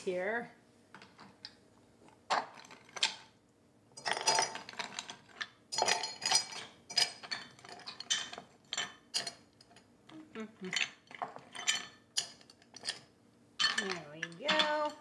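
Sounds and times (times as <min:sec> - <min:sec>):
ice cubes clinking against glass: 0:04.0 - 0:09.8, 0:10.7 - 0:13.0, 0:13.6 - 0:15.0.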